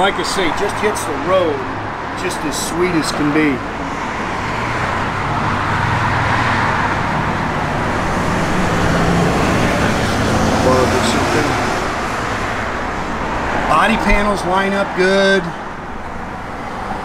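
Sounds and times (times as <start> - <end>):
vehicles passing: 0.0 - 17.0
low engine hum: 1.1 - 14.3.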